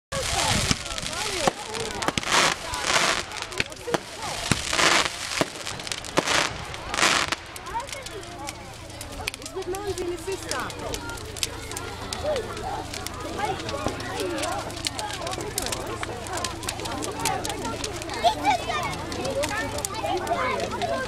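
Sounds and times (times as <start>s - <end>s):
rockets hissing: 0.1s - 7.8s
firework bangs and crackles: 0.1s - 21.0s.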